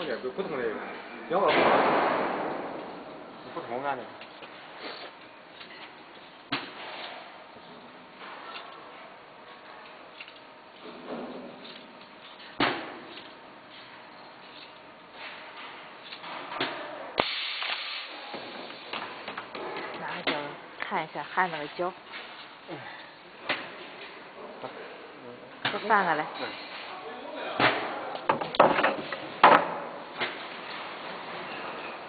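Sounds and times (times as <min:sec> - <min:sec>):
low workshop background: 0:02.8 - 0:27.0
burst of hissing: 0:17.2 - 0:18.2.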